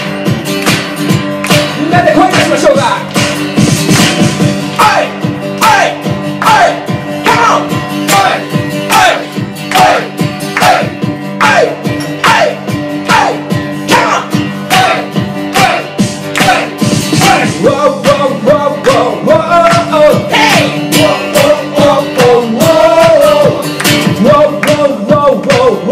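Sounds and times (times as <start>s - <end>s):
acoustic guitar strumming: 0.0s - 25.9s
man singing: 1.7s - 3.2s, 4.6s - 25.9s.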